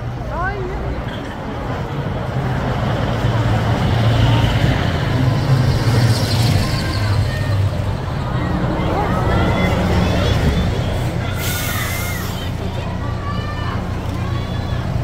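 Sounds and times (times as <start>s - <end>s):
buses driving past: 0.0s - 15.0s.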